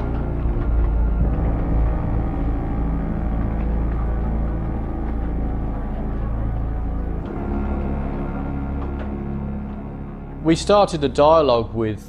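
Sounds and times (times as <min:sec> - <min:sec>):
dark tense background music: 0:00.0 - 0:12.0.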